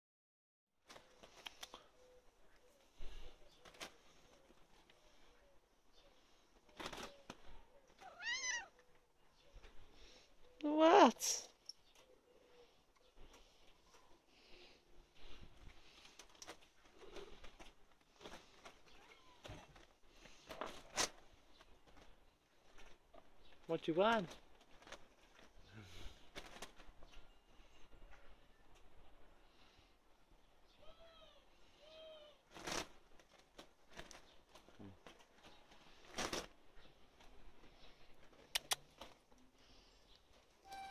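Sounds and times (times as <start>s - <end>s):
cat meowing: 8.0s - 8.8s.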